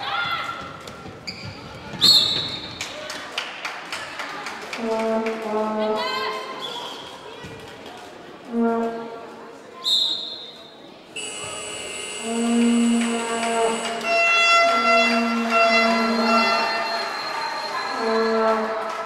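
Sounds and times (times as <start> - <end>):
handball game in sports hall: 0.0 - 3.3, 6.2 - 9.0, 9.6 - 19.0
short high whistle: 9.8 - 10.6
plastic fan horns blown: 11.2 - 19.0.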